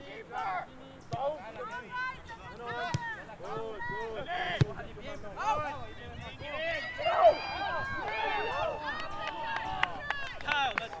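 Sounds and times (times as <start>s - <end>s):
ball being kicked: 2.7s - 3.2s
players shouting: 6.4s - 11.0s.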